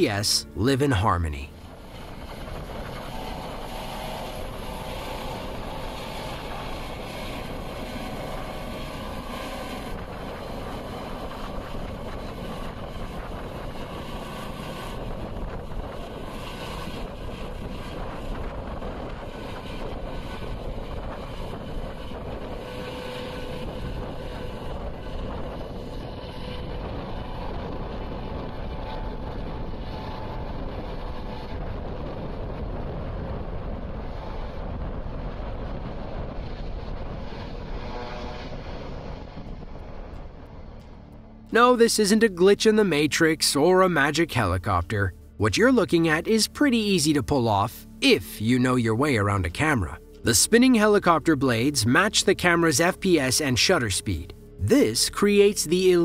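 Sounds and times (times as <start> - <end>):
helicopter flying: 0.0 - 56.0
wind buffeting microphone: 1.6 - 40.8.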